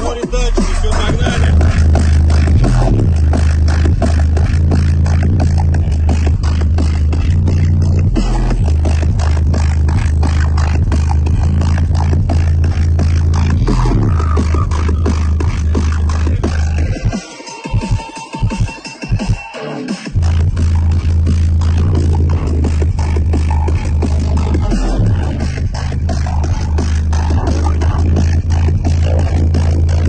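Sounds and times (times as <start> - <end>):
bass-heavy electronic music: 0.0 - 30.0.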